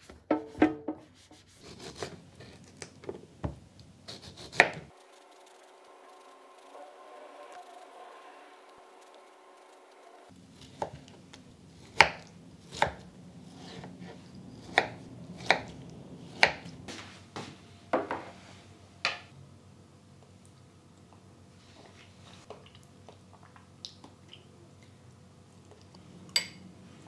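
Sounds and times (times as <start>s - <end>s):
faint steady hum: 0.3s - 27.0s.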